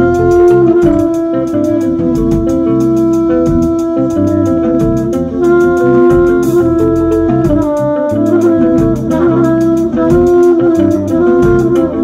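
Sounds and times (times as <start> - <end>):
electric bass line: 0.0 - 12.0
electric guitar: 0.0 - 12.0
trumpet: 0.0 - 12.0.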